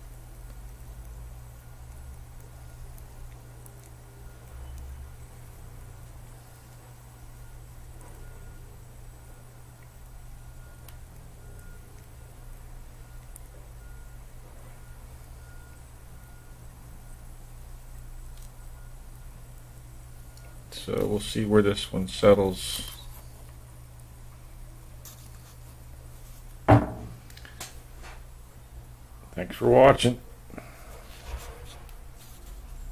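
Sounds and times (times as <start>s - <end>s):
steady low hum: 0.0s - 32.9s
faint high beeps: 7.4s - 9.6s, 10.2s - 12.4s, 13.0s - 17.2s, 18.5s - 19.4s, 20.0s - 23.1s.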